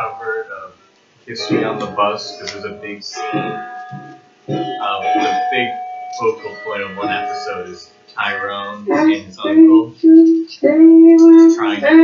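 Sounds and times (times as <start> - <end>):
voice: 0.0 - 0.7, 1.3 - 3.6, 4.5 - 12.0
music with held note: 0.0 - 12.0.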